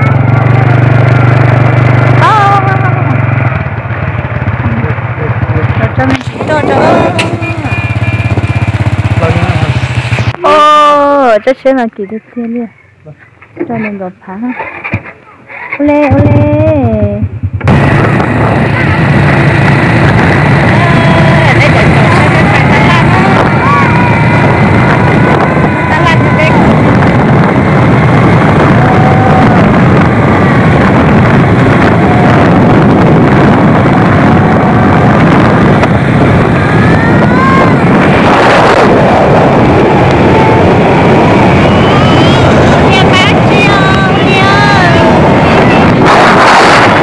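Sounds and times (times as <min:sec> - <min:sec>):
motor scooter running: 0:00.0 - 0:11.2, 0:15.8 - 0:47.0
wind buffeting microphone: 0:00.0 - 0:14.2, 0:15.8 - 0:47.0
voices: 0:02.2 - 0:03.5, 0:04.6 - 0:17.3, 0:18.2 - 0:47.0.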